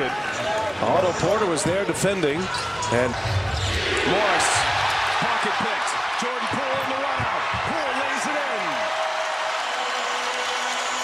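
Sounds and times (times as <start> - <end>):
crowd cheering: 2.6 - 11.0.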